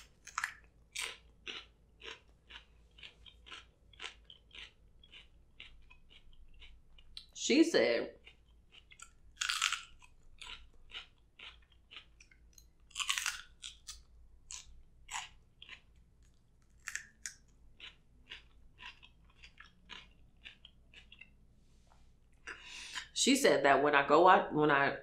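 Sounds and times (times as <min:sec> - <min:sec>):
crunchy bites: 0:00.0 - 0:07.3, 0:08.2 - 0:21.3
crunchy chewing: 0:00.0 - 0:07.4, 0:08.1 - 0:21.4.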